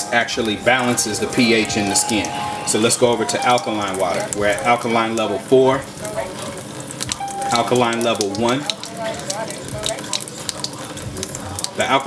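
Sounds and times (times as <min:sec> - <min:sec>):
water running into sink: 0:00.0 - 0:12.0.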